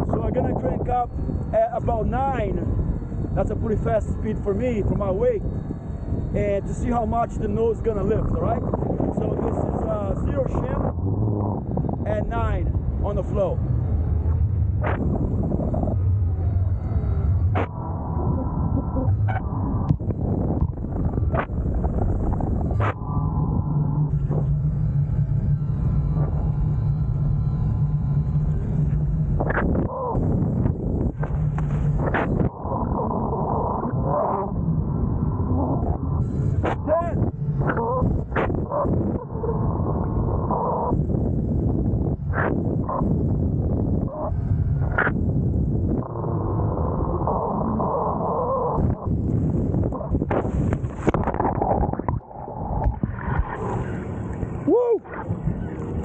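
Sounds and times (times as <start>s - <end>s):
low steady hum: 0.0s - 56.0s
wind rushing over microphone: 0.0s - 56.0s.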